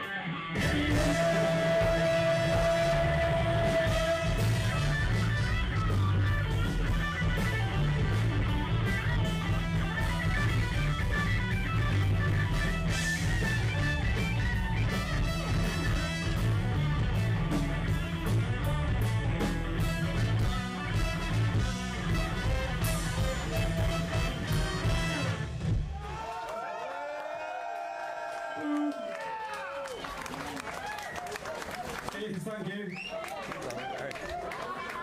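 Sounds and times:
electric guitar: 0.0s - 25.9s
bass guitar: 0.0s - 26.1s
drums: 0.0s - 26.5s.

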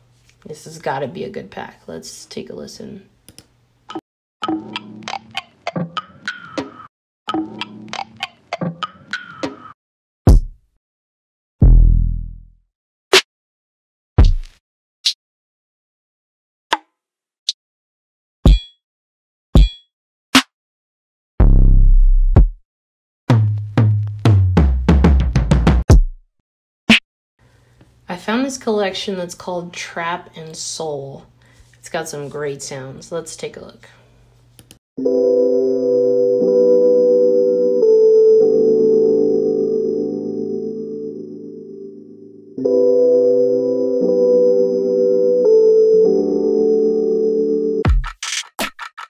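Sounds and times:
kick drum with ringing click: 18.5s - 18.8s, 19.6s - 19.8s, 22.4s - 22.6s
synth chord loop: 35.0s - 47.8s.

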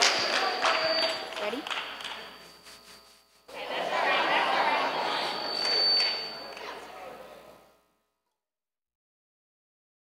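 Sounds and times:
voices talking in a hall: 0.0s - 2.6s, 3.5s - 7.8s
thin high whistle: 0.0s - 3.5s, 5.2s - 6.6s.

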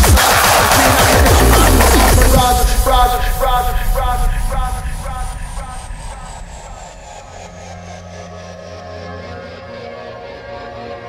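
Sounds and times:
frenchcore dj mix: 0.0s - 8.6s
heavy low bass: 0.0s - 9.0s
high downward synth sweep: 0.4s - 9.0s
low held tones: 1.2s - 8.6s.

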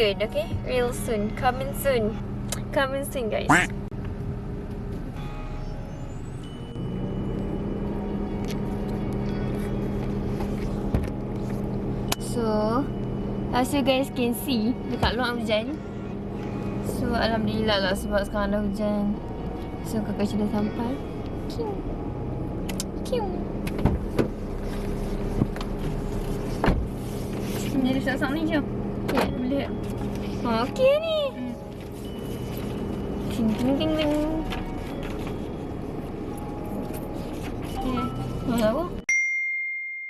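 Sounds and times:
car engine idling: 0.0s - 39.0s
low motor hum: 0.0s - 39.1s.

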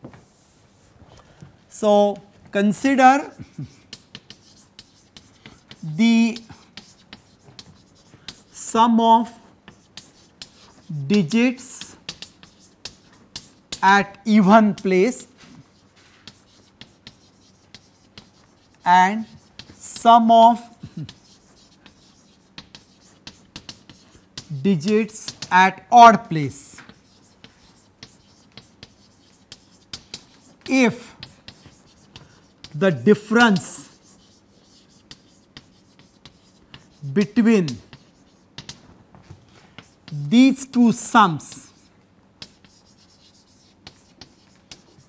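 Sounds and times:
chalk tapping on blackboard: 3.2s - 45.0s.

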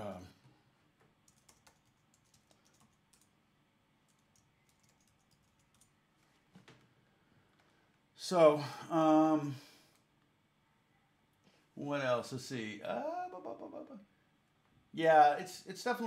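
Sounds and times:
typing on computer keyboard: 1.2s - 3.3s, 4.1s - 6.0s
person murmuring: 13.0s - 14.0s.

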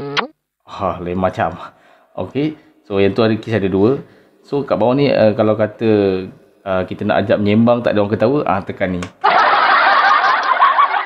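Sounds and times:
canned audience laughter: 9.2s - 11.0s.

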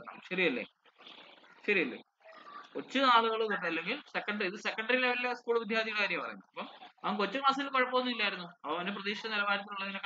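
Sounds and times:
man speaking: 0.0s - 0.8s, 1.5s - 10.0s.

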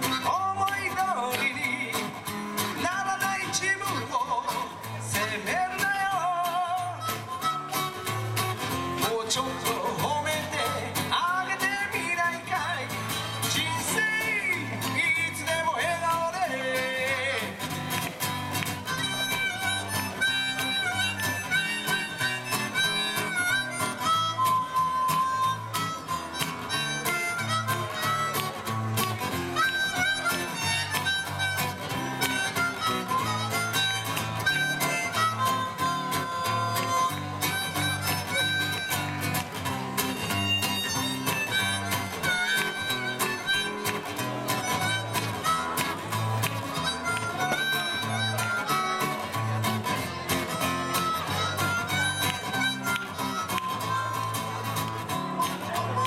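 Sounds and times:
harmonica melody: 0.0s - 56.0s
strummed acoustic guitar: 0.0s - 56.0s.

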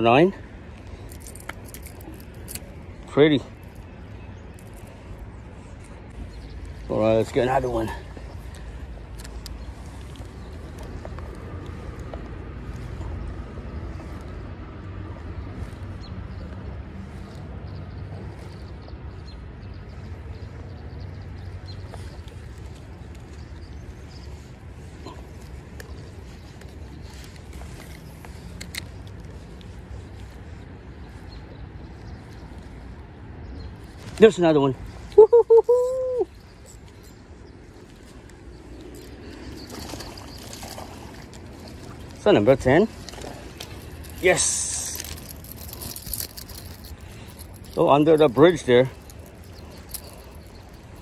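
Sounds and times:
creek water flowing: 34.8s - 51.0s.

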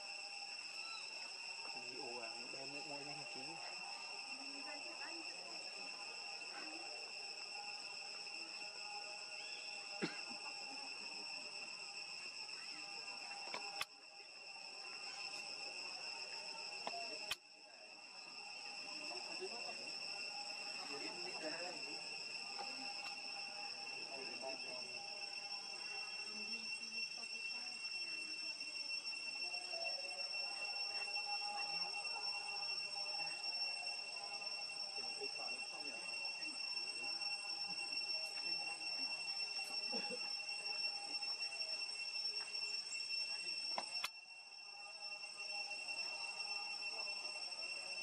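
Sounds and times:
high-pitched insect drone: 0.0s - 48.0s
faint voices: 0.8s - 48.0s.

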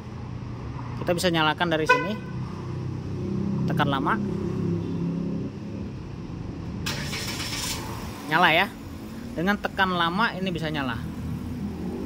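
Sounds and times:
car engine humming: 4.6s - 12.0s.

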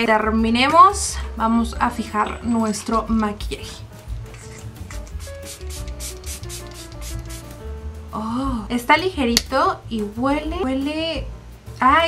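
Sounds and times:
background music: 0.0s - 12.0s
setting spray misting hisses: 4.4s - 7.6s.

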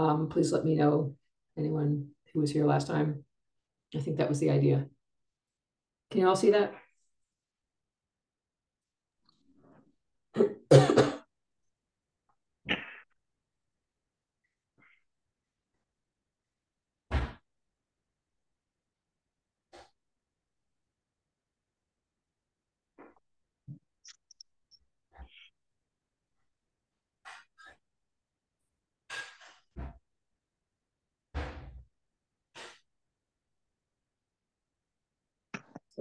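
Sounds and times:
woman clearing her throat: 10.4s - 11.3s.

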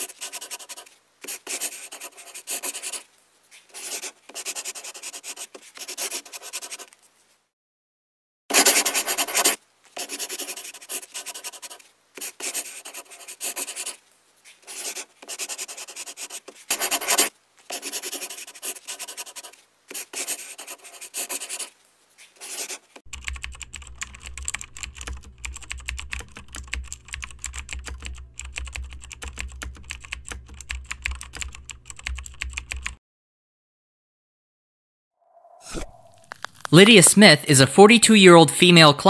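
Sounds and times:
scratchy strokes: 8.5s - 23.0s
keyboard typing clicks: 23.1s - 33.0s.

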